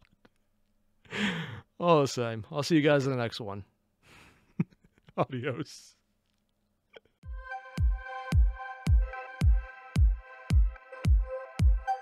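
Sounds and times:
man sighing: 1.1s - 1.7s.

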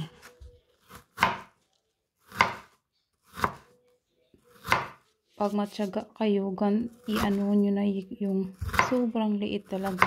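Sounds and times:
cleaver chopping on wooden board: 1.2s - 1.5s, 2.3s - 2.7s, 8.6s - 9.0s.

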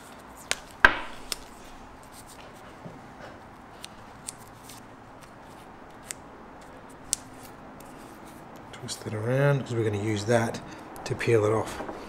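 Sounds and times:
tape rustling: 0.0s - 8.7s.

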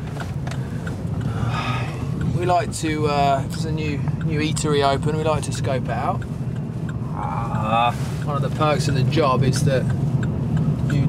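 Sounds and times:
car engine drone: 0.0s - 11.0s
road noise inside car: 0.0s - 11.0s.

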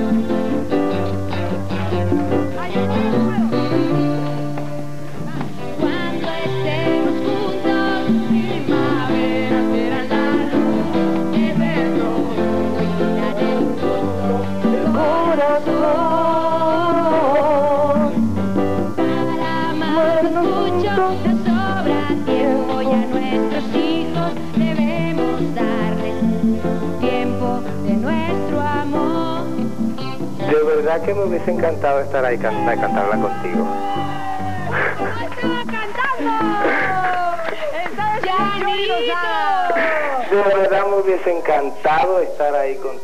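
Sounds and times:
woman and man singing duet: 0.0s - 40.7s
live band pop song: 0.0s - 41.8s
guitar: 0.0s - 43.0s.

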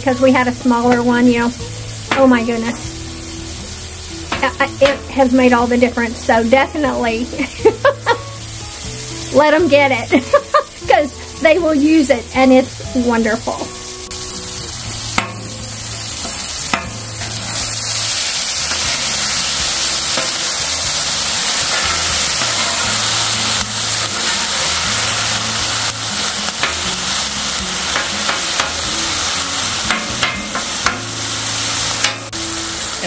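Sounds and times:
meat sizzling on a griddle: 0.0s - 33.0s
metal spatula scraping griddle: 16.2s - 27.1s.

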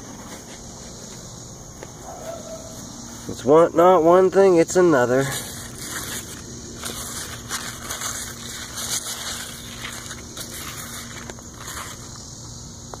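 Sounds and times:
leaves rustling and crackling: 0.0s - 12.5s.

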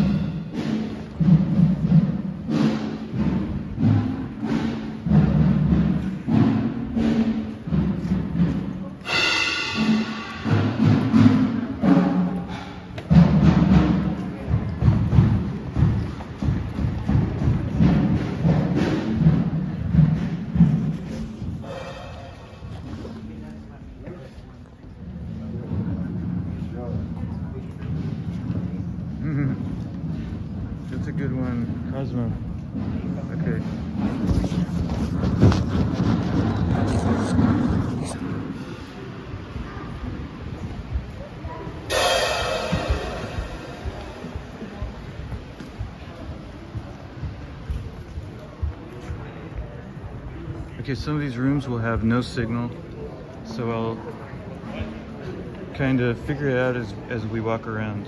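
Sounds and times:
crowd murmur: 0.0s - 58.0s
deep reverberant drum strokes: 0.0s - 58.0s.

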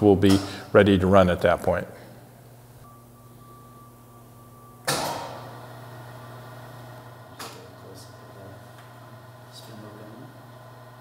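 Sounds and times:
machine low hum: 0.0s - 11.0s
faint high whine: 2.0s - 10.5s
sharp mechanical clunk: 4.8s - 5.4s.

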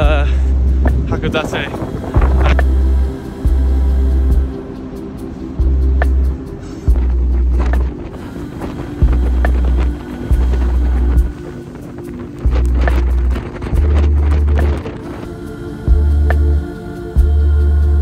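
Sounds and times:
pulsing deep bass note: 2.0s - 4.5s, 12.5s - 14.8s, 15.9s - 18.0s.

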